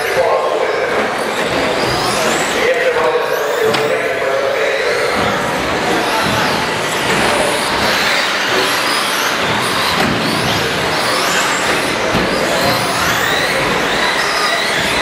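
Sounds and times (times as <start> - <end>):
toy truck motors whining: 0.5 - 15.0.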